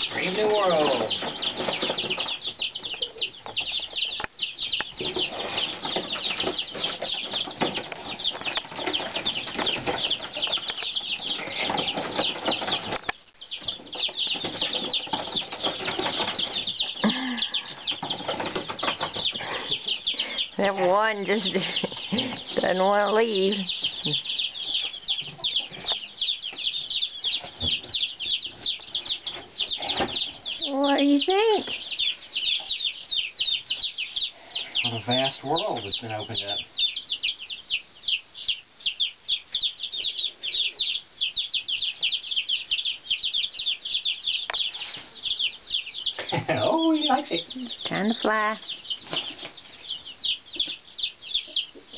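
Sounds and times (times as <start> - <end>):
baby chicks peeping: 0.0 - 51.9.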